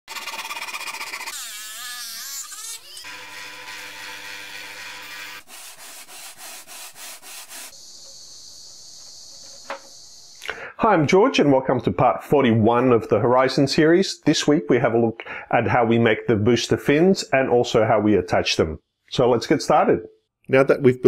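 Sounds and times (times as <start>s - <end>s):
hand saw cutting plywood: 0.1s - 7.8s
power tool hum: 0.1s - 10.5s
sanding strokes on abrasive strip: 3.7s - 7.8s
wavering whine: 7.7s - 10.4s.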